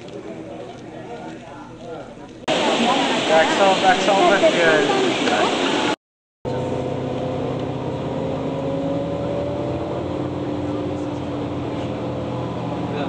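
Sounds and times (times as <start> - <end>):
road noise: 0.0 - 13.0
vehicle engine hum: 6.5 - 13.0.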